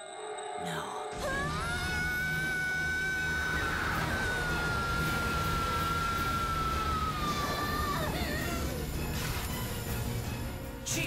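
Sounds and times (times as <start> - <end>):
woman screaming: 1.2 - 8.8.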